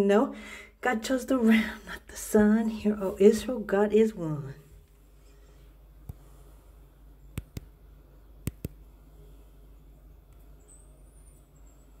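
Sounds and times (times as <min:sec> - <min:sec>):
low steady hum: 0:00.0 - 0:12.0
sharp clicks: 0:07.3 - 0:07.7, 0:08.4 - 0:08.8.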